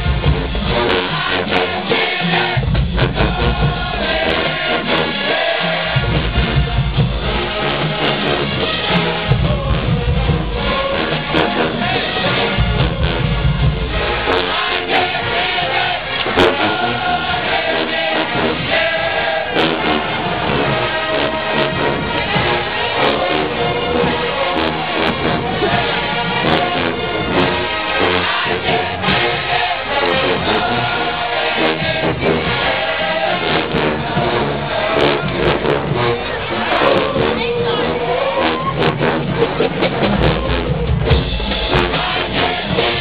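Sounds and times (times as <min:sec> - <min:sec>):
brass chords: 0:00.0 - 0:43.0
drums: 0:00.0 - 0:43.0
marching band playing: 0:00.0 - 0:43.0.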